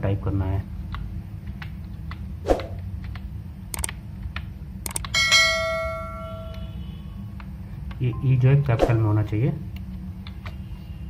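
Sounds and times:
steady low hum: 0:00.0 - 0:11.0
click: 0:03.0 - 0:04.0, 0:04.8 - 0:05.1
laptop key clicks: 0:03.0 - 0:05.1
bell chime: 0:05.2 - 0:06.8.

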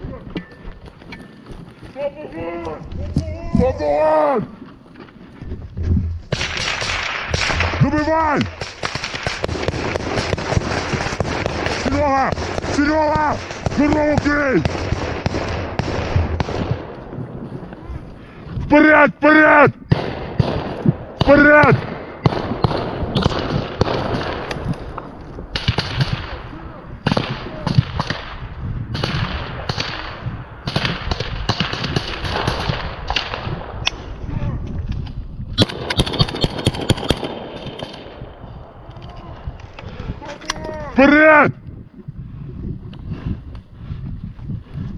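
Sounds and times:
rapid gunfire: 0:06.3 - 0:16.9, 0:19.9 - 0:24.5, 0:25.6 - 0:26.4, 0:29.0 - 0:33.6, 0:35.6 - 0:38.2.

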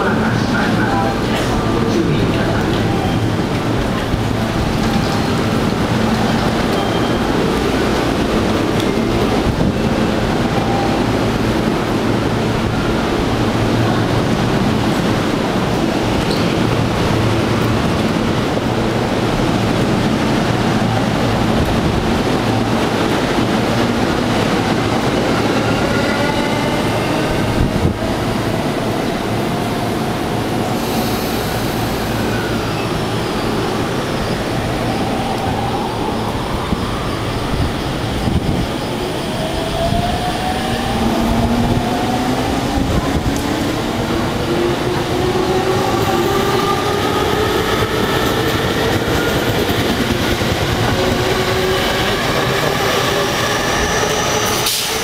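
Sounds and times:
trains rumbling on rails: 0:00.0 - 0:55.0.

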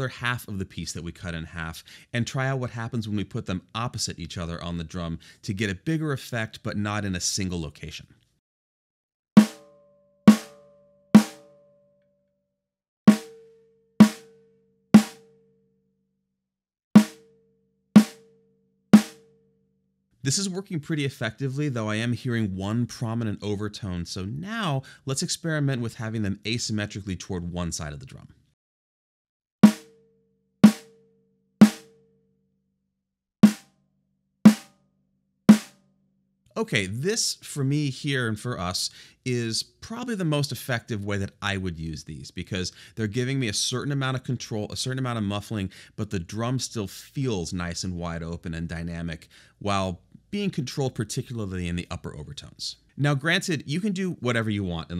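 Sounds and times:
muffled snare drum hits: 0:09.4 - 0:09.7, 0:10.3 - 0:10.6, 0:11.2 - 0:11.4, 0:14.0 - 0:14.3, 0:15.0 - 0:15.2, 0:17.0 - 0:17.2, 0:18.0 - 0:18.2, 0:19.0 - 0:19.2, 0:29.6 - 0:29.9, 0:30.6 - 0:30.9, 0:31.6 - 0:31.9, 0:34.5 - 0:34.7, 0:35.5 - 0:35.8
ringing drum overtone: 0:09.4 - 0:11.5, 0:13.1 - 0:14.3, 0:15.0 - 0:15.2, 0:17.0 - 0:17.3, 0:18.0 - 0:18.2, 0:19.0 - 0:19.3, 0:29.6 - 0:29.9.

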